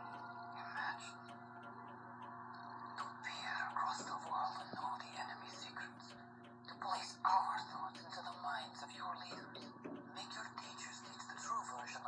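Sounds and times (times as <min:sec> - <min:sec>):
steady low hum: 0:00.0 - 0:12.0
whispering voices on television: 0:00.0 - 0:12.0.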